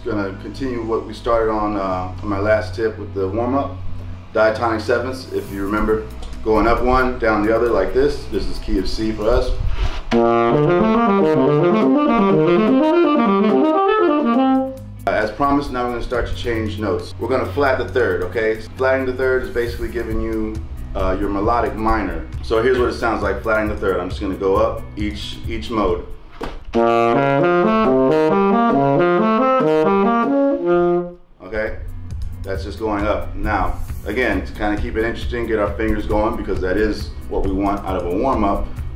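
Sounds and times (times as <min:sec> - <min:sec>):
tenor saxophone arpeggios: 0:10.1 - 0:14.9, 0:26.8 - 0:31.3.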